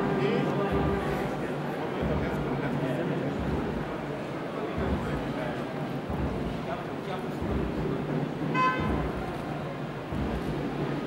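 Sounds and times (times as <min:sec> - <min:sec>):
crowd murmur in large room: 0:00.0 - 0:11.0.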